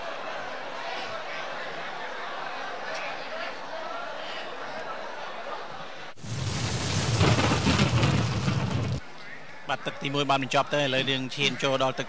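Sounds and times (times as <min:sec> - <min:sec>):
loud rumbling burst of noise: 0:06.2 - 0:09.0.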